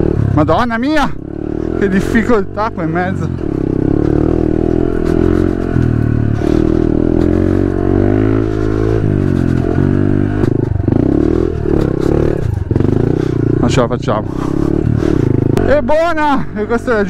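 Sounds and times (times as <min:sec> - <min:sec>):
small motorcycle engine revving: 0:00.0 - 0:15.8.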